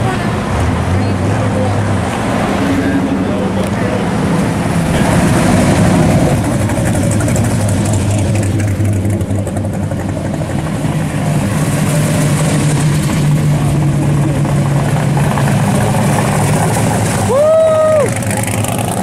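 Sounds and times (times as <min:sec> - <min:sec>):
car engines rumbling past: 0:00.0 - 0:19.0.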